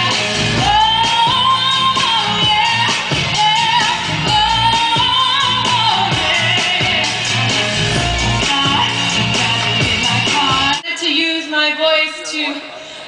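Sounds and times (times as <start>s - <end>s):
steady drum beat: 0.0s - 10.8s
woman singing: 0.0s - 12.7s.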